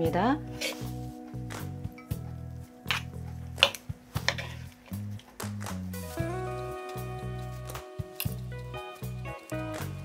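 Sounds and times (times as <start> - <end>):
background music low notes: 0.0 - 10.0
spoons tossing wet salad: 2.9 - 5.2.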